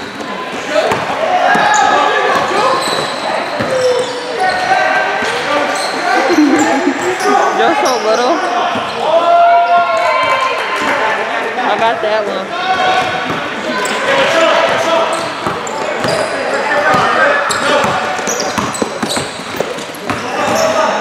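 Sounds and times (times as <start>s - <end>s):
players calling out: 0.9s - 10.1s
basketball bouncing on court floor: 16.9s - 20.6s.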